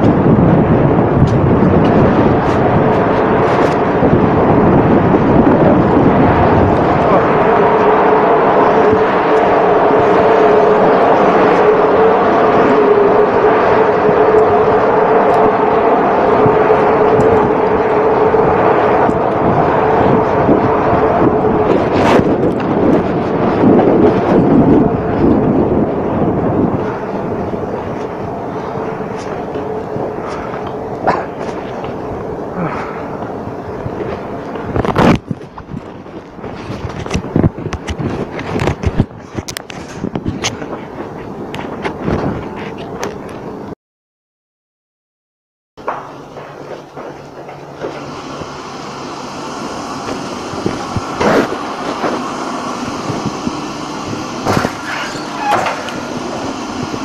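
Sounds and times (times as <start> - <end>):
ship machinery droning: 0.0 - 37.4, 45.8 - 57.0.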